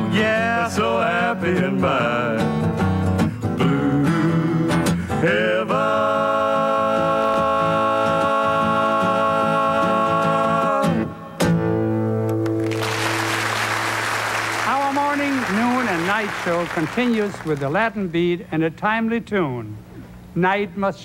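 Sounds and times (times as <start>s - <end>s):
two men singing: 0.0s - 2.6s, 3.6s - 11.1s
strummed acoustic guitar: 0.0s - 5.8s, 6.9s - 13.8s.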